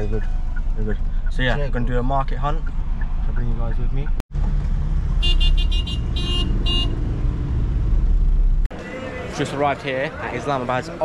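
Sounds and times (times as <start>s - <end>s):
taxi engine rumble in traffic: 0.0s - 11.0s
car horn honking short toots: 5.2s - 7.0s.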